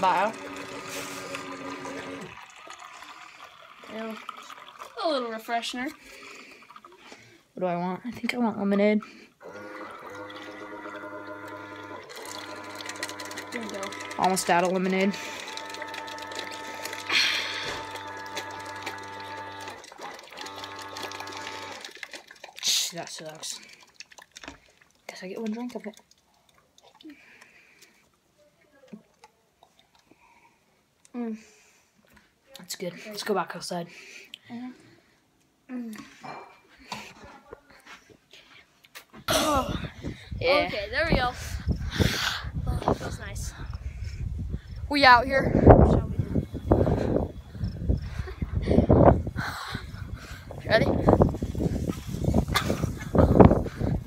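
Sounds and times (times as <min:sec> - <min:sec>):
drink dispenser pump humming: 0:00.0 - 0:07.0, 0:09.4 - 0:22.5
drink trickling into cup: 0:00.0 - 0:07.4, 0:09.0 - 0:28.2
quiet gulps: 0:05.9 - 0:07.6, 0:21.0 - 0:31.2, 0:34.2 - 0:44.9, 0:45.5 - 0:54.0.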